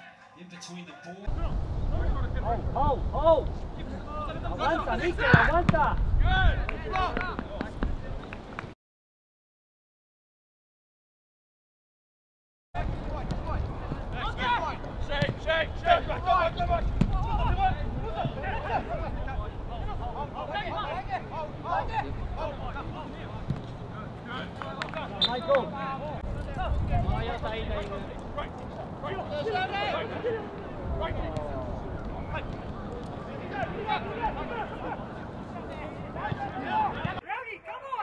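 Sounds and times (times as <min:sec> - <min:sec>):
players calling and shouting: 0:00.0 - 0:08.5, 0:12.8 - 0:38.0.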